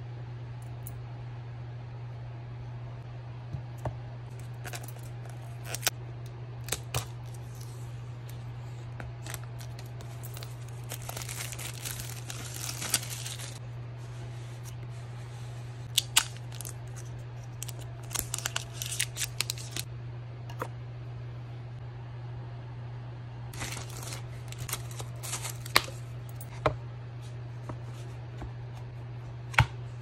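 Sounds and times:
steady low hum: 0.0s - 30.0s
paper and plastic rustling: 9.1s - 13.6s, 16.0s - 19.9s, 23.6s - 26.0s.

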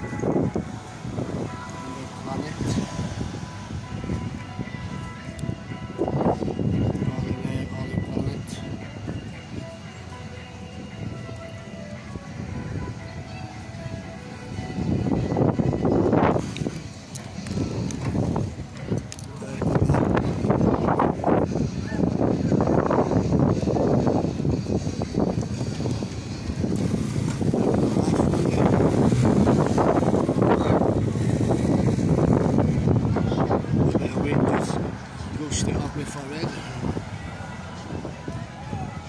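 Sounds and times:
arcade music: 0.0s - 16.3s
people talking: 1.7s - 3.1s, 6.9s - 9.3s, 19.2s - 22.7s, 30.4s - 31.1s, 33.1s - 39.0s
rushes of noise: 14.4s - 39.0s.

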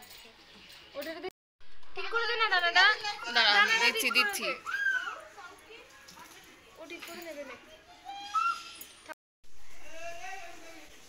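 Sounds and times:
children talking and playing: 0.4s - 10.9s.

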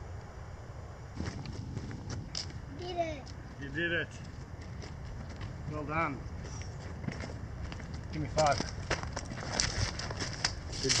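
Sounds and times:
footsteps on leafy dirt track: 3.2s - 11.0s.

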